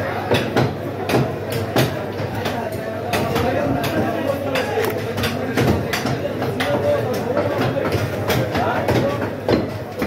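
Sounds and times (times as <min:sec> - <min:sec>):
chatter of market crowd: 0:00.0 - 0:10.0
blades chopping on wooden blocks: 0:00.3 - 0:10.0.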